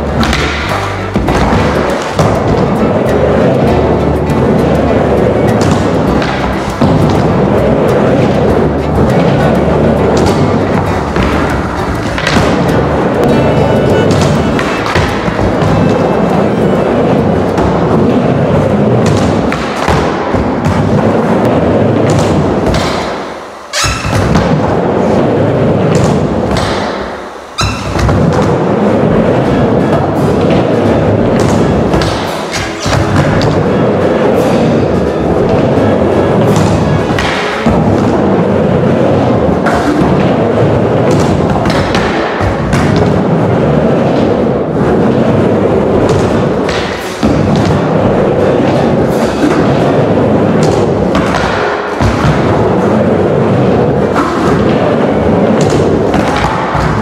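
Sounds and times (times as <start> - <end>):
background music: 0.0 - 57.0
skateboard wheels rolling on wood: 0.0 - 57.0.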